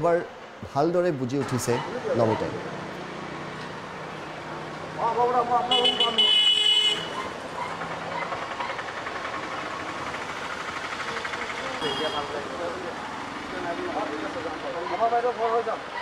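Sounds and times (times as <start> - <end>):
street traffic: 0.0 - 16.0
vehicle horn: 5.6 - 7.3, 11.8 - 12.4.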